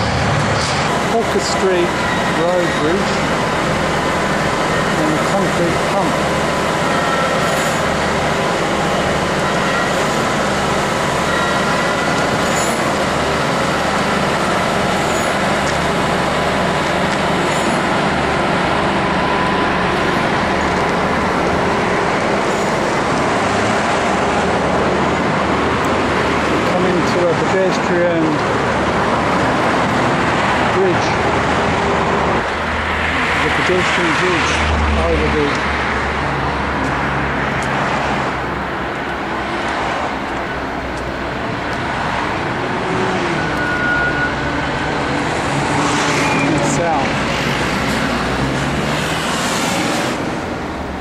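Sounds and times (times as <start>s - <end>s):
diesel pump truck engine running: 0.0s - 51.0s
road traffic noise: 0.0s - 51.0s.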